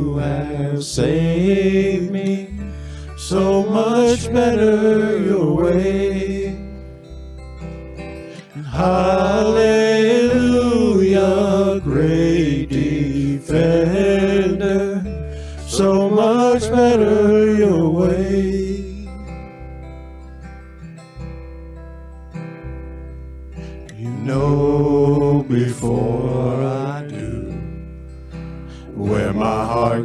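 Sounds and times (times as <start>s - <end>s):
man singing worship song: 0.0s - 6.8s, 8.4s - 19.4s, 23.9s - 27.8s, 28.8s - 30.0s
acoustic guitar: 0.0s - 30.0s
bass guitar: 0.0s - 30.0s.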